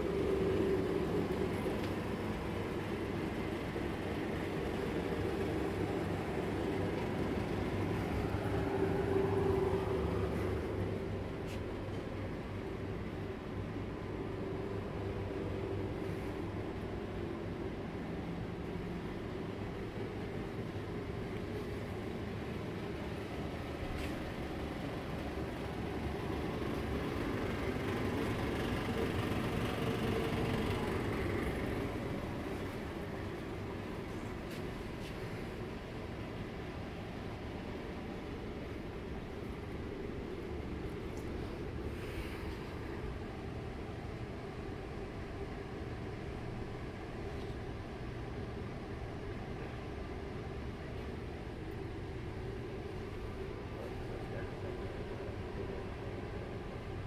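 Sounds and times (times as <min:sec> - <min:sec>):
supermarket indoor hum and rumble: 0:00.0 - 0:57.0.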